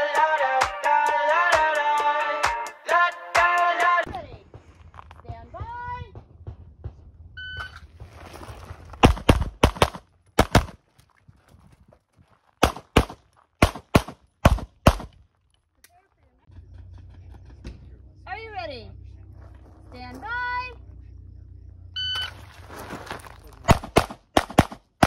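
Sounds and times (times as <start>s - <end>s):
shot timer beep: 7.4s - 7.8s
pistol shots: 9.0s - 10.8s, 12.6s - 15.2s, 23.7s - 25.0s.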